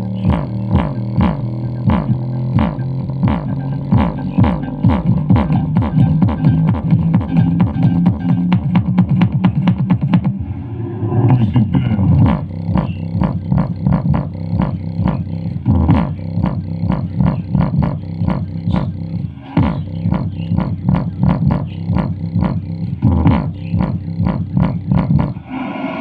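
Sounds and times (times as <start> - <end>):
bass-heavy music through speaker: 0.0 - 10.4, 11.2 - 25.5.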